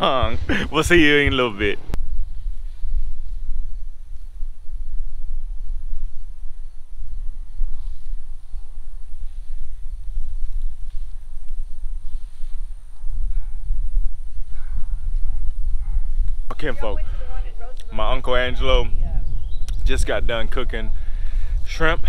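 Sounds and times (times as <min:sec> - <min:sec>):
wind buffeting microphone: 0:00.0 - 0:22.0
faint rustles in grass: 0:02.0 - 0:16.5.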